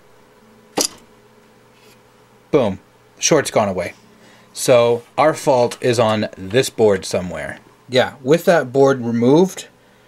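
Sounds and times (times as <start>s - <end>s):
faint electrical hum: 0.0s - 10.0s
sharp click of card cage: 0.8s - 1.1s.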